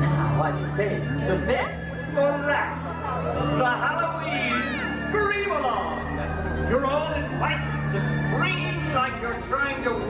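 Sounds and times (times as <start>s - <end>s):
show music over loudspeakers: 0.0s - 10.0s.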